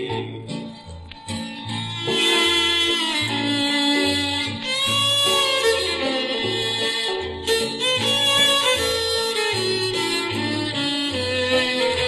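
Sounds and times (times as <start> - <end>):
fiddle with vibrato: 1.3 - 12.0.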